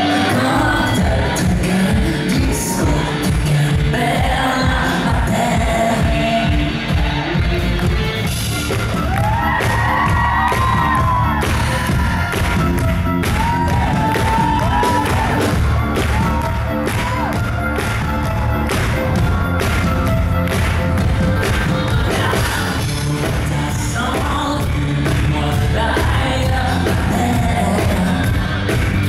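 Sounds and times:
crowd cheering and whooping: 0.0 - 3.2, 6.9 - 22.8
live band playing pop song: 0.0 - 29.0.

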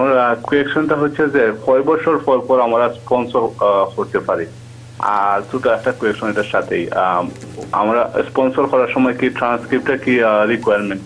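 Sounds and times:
person talking over telephone: 5.0 - 11.0.

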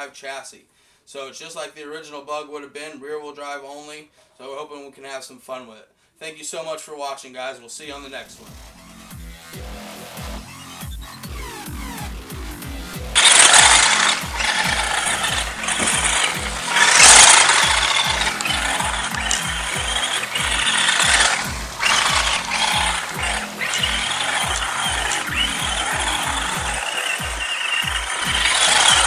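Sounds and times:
background music with beat: 8.3 - 13.9
electric motor and gear whine: 13.0 - 29.0.

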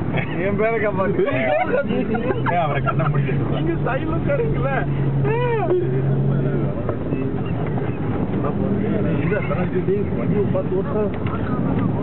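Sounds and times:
vehicle engine rumble: 0.0 - 12.0.

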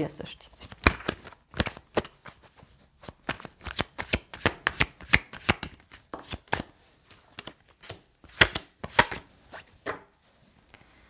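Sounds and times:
cards being shuffled: 0.5 - 10.0.

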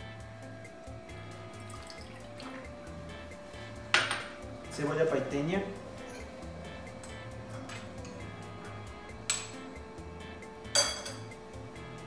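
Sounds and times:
glass bowls clinking: 1.7 - 2.6, 3.9 - 4.4, 6.0 - 6.4, 10.7 - 11.4.

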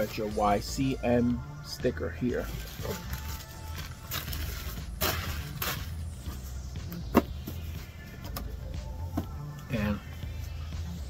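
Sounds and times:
tissue paper rustling: 2.6 - 6.0.

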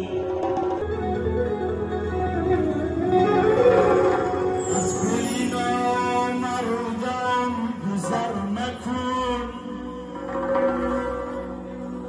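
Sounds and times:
plucked string accompaniment: 0.0 - 12.0
man singing through speakers: 4.8 - 10.3.

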